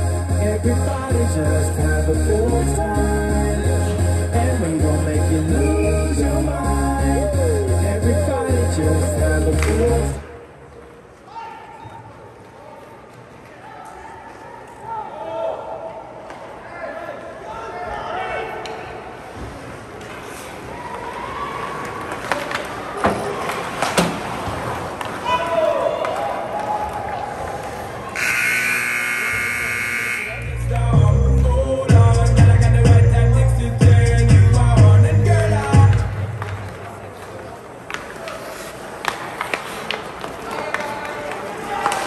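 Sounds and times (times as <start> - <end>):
hockey sticks and puck clacking: 19.5 - 28.5, 35.9 - 42.0
arena buzzer: 28.2 - 30.7.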